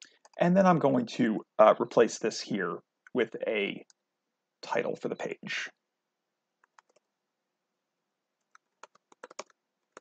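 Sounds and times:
faint keyboard typing: 0.0 - 0.8, 6.6 - 7.2, 8.4 - 10.0.

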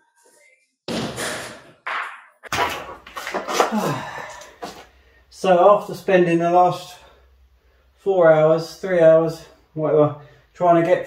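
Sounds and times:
plasterboard scraping: 2.5 - 4.0.

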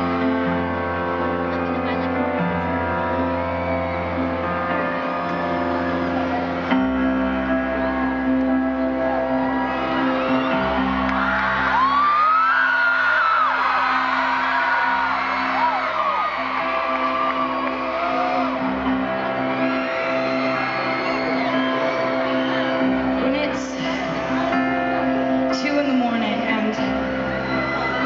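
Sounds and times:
stadium crowd cheering: 0.0 - 28.0
whoops and screams: 8.9 - 23.3, 27.0 - 28.0.

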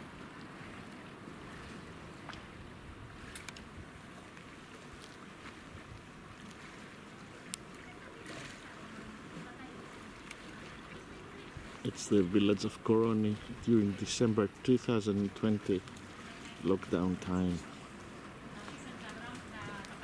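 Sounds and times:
water lapping against quay: 0.0 - 20.0
faint clicks: 3.3 - 3.7, 7.5 - 7.9, 10.2 - 10.4.

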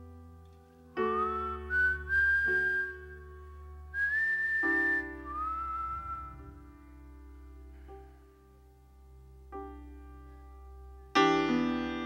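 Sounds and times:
man whistling a slow melody: 1.0 - 6.8
piano chord: 4.6 - 12.0.

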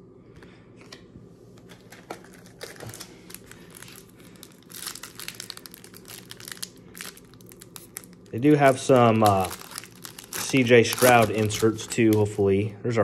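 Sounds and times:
foil wrapper crinkling: 1.7 - 12.5.

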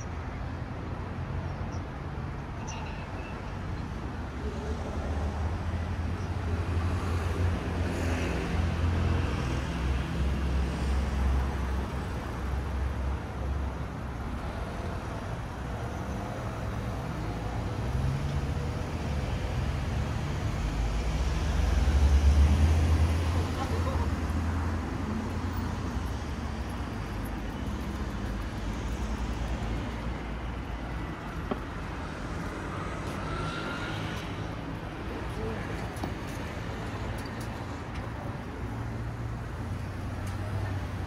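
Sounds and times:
low traffic rumble: 0.0 - 41.0
passing vehicles: 0.0 - 41.0.

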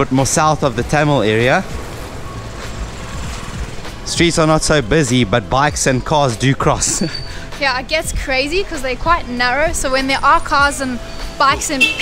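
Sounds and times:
busy street ambience: 0.0 - 12.0
quiet background music: 0.0 - 12.0
motorcycle engine running: 1.0 - 6.0.

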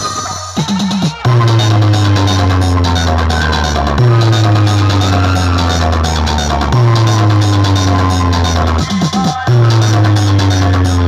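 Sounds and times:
dj remix music with deep bass: 0.0 - 11.0.

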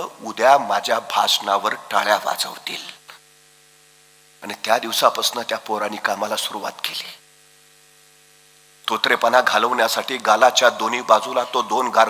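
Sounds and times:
man talking: 0.0 - 3.2, 4.4 - 7.2, 8.8 - 12.0
faint mains hum: 0.0 - 12.0.

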